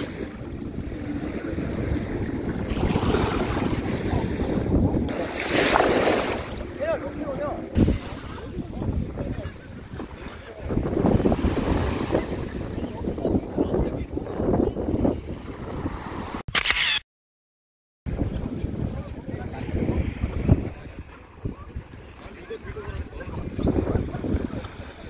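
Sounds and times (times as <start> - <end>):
small waves breaking: 0.0 - 8.7
wind buffeting microphone: 0.0 - 16.4, 18.1 - 25.0.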